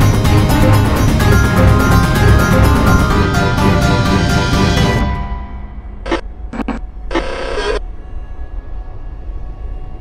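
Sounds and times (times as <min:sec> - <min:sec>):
low rumbling drone: 0:00.0 - 0:10.0.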